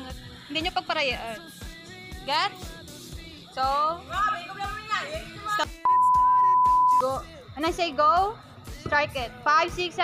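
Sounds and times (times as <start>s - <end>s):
woman's voice: 0.0s - 1.5s, 2.1s - 2.7s, 3.5s - 5.8s, 7.0s - 10.0s
background music: 0.0s - 10.0s
electronic beep: 5.8s - 7.2s.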